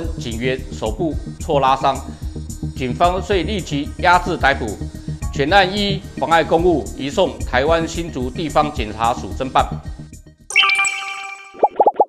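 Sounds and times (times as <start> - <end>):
bright chime: 10.5 - 11.8
quick popping notes: 10.5 - 12.0.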